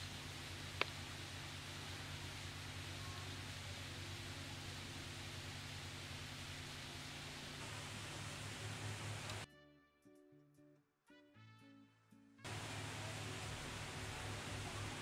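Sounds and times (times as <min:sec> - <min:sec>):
even hiss: 0:00.0 - 0:09.5, 0:12.5 - 0:15.0
low constant hum: 0:00.0 - 0:09.5, 0:12.5 - 0:15.0.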